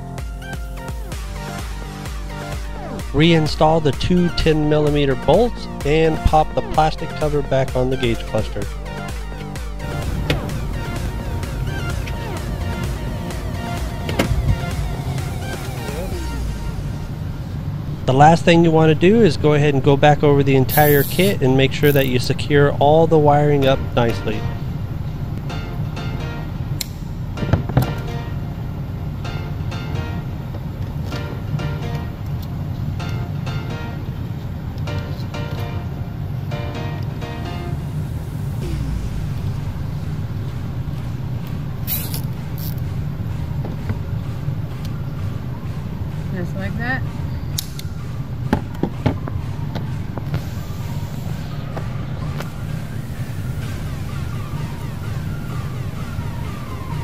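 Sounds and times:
background music: 0.0 - 57.0.

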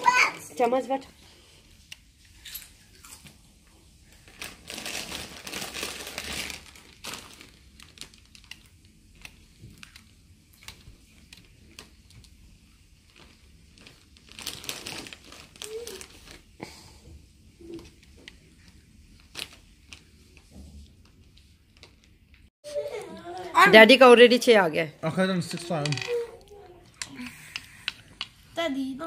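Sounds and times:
soft rustling and crinkling: 0.1 - 23.4.

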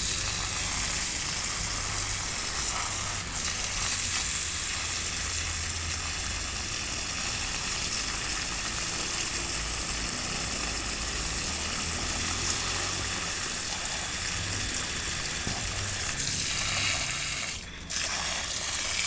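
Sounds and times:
water spraying from hose nozzle: 0.0 - 19.0.

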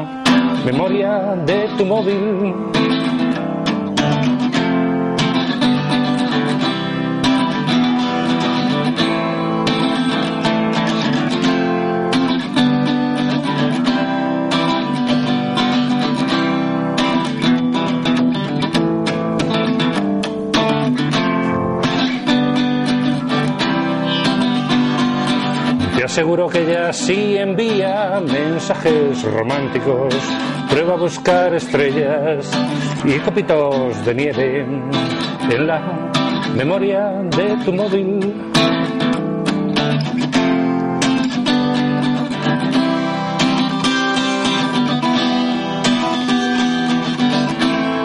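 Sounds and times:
plucked and strummed guitar: 0.0 - 48.0.

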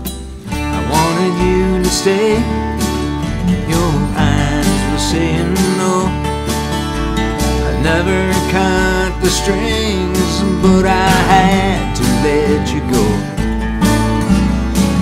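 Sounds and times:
acoustic guitar strummed: 0.0 - 15.0
country backing track with bass: 0.0 - 15.0.

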